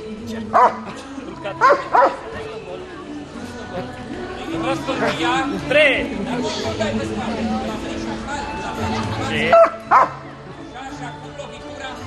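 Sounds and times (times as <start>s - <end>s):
dog barking: 0.5s - 0.9s, 1.6s - 2.2s, 9.5s - 10.2s.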